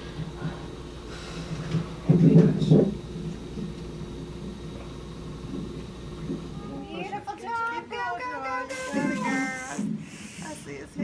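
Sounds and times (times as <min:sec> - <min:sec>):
hiss: 0:08.7 - 0:10.8.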